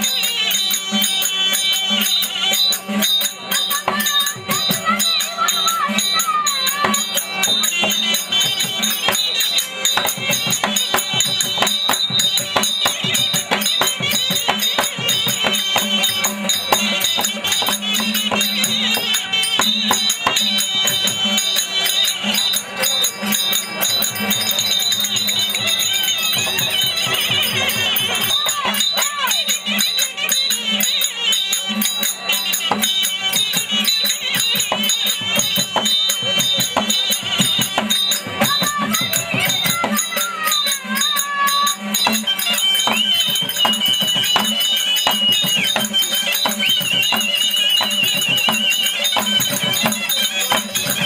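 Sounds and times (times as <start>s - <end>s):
drum strokes: 0.0s - 51.0s
harmonium holding notes: 0.0s - 51.0s
jingling percussion: 0.0s - 51.0s
wavering high melody: 0.0s - 51.0s.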